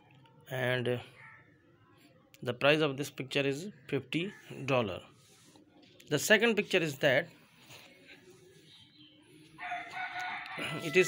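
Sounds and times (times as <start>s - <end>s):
rooster crowing: 9.6s - 11.0s.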